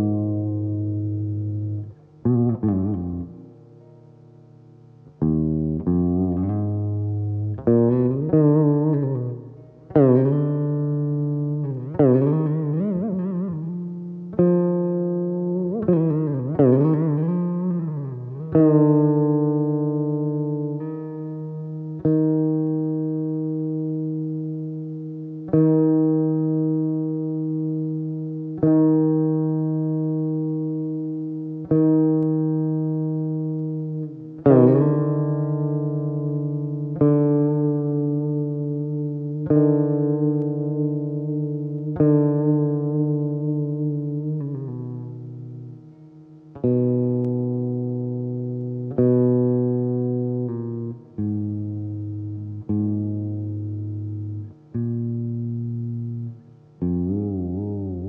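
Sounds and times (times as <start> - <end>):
plucked veena notes: 0.0 - 58.0.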